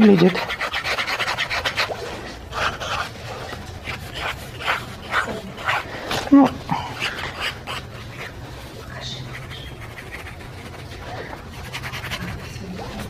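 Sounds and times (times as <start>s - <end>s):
felt-tip marker scratching on paper: 0.0s - 3.2s, 3.8s - 5.9s, 7.0s - 8.4s, 9.0s - 13.0s.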